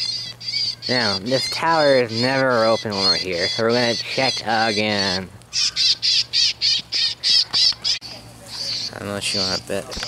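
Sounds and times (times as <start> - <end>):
electronic bird calls: 0.0 - 10.0.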